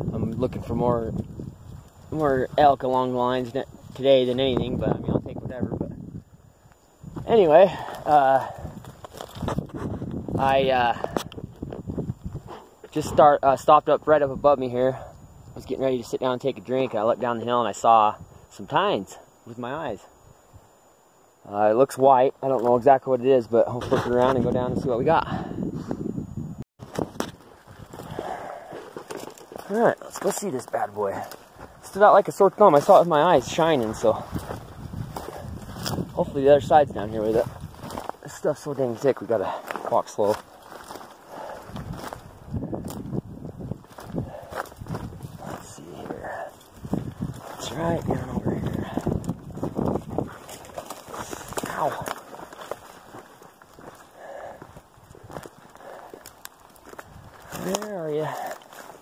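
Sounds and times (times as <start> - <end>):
footsteps crunching on gravel: 7.1 - 13.1, 26.8 - 59.0
camera handling rustle: 8.8 - 10.2.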